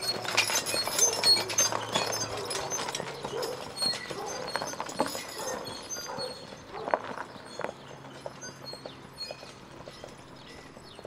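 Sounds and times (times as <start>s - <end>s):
horse hooves clip-clopping on road: 0.0s - 11.0s.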